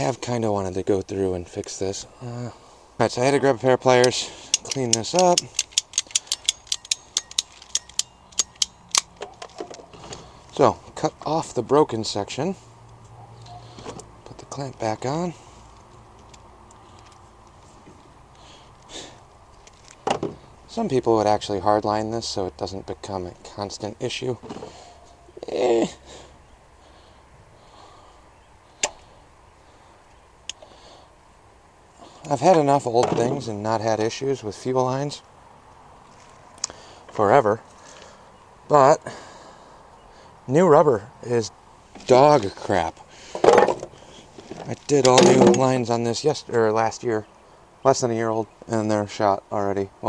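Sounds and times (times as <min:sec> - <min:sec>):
hand tool metallic clicks: 0:04.0 - 0:09.9.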